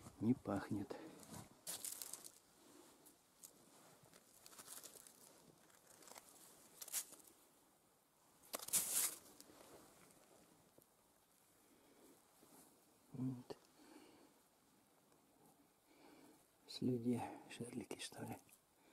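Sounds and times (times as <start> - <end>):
hand scraping through gravel: 1.6 - 2.4, 8.6 - 9.5.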